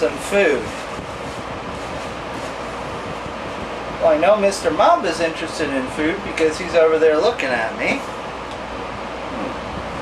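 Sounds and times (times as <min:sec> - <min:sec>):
room fan whooshing: 0:00.0 - 0:10.0.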